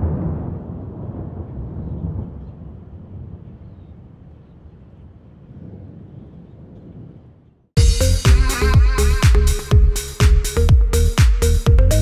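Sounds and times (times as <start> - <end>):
low rolling thunder: 0.0 - 7.4.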